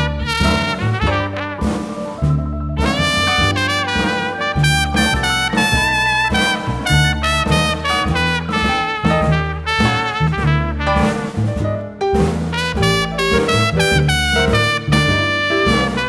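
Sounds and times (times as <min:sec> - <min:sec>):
trumpets and trombones: 0:00.0 - 0:11.6, 0:12.4 - 0:16.0
jazz big band playing swing: 0:00.0 - 0:16.0
pulsing bass line: 0:02.2 - 0:08.6.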